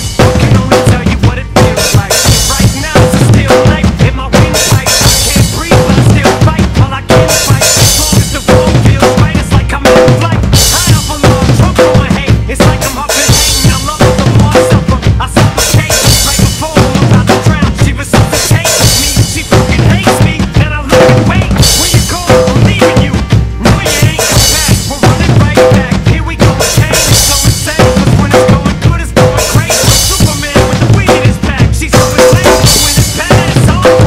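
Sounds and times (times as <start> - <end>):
drum kit playing a beat: 0.0 - 34.0
recorded song: 0.0 - 34.0.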